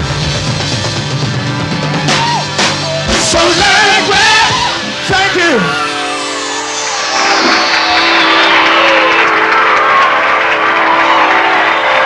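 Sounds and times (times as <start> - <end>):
funk band holding chord: 0.0 - 11.2
falling whooshing sweep: 5.6 - 10.5.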